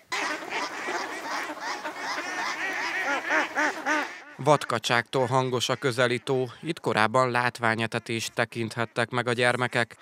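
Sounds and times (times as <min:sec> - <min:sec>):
ducks quacking: 0:00.0 - 0:06.8.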